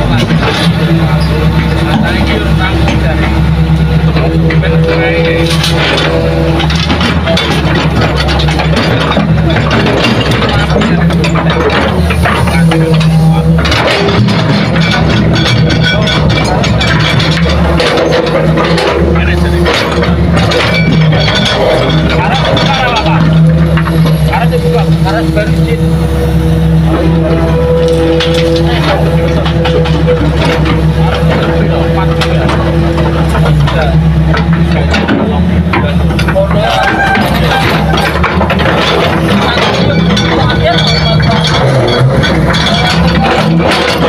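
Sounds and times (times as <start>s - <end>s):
excavator diesel engine running: 0.0s - 44.0s.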